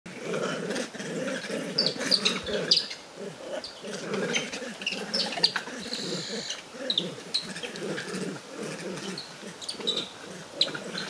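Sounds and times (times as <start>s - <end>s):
monkeys giving low rough calls: 0.1s - 11.0s
monkey high chirp: 1.8s - 3.0s.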